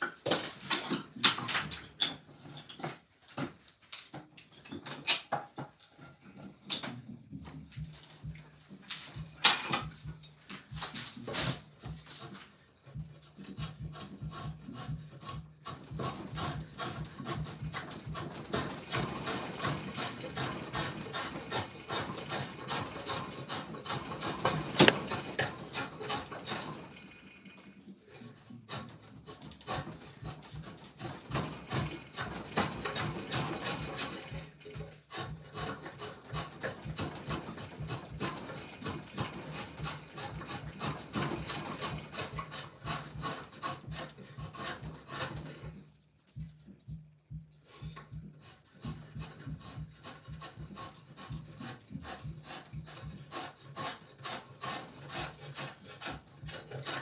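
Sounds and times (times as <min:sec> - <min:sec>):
spokeshave scraping wood: 0:05.7 - 0:46.8, 0:47.6 - 0:57.0.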